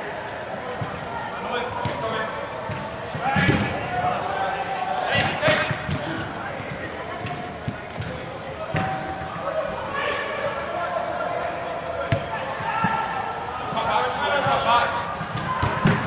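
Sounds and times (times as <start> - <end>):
players shouting: 0.0 - 16.0.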